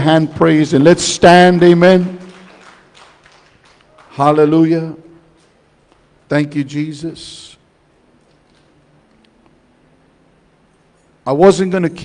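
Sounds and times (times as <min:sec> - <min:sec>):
faint hand clapping: 0:01.5 - 0:04.2.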